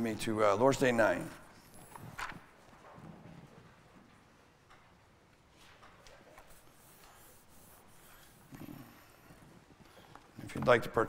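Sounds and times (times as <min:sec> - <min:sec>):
book pages turning: 0:01.8 - 0:03.1.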